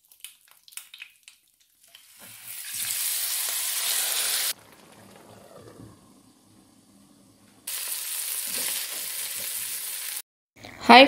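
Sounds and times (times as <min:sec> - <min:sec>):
oil sizzling: 0:00.0 - 0:10.2.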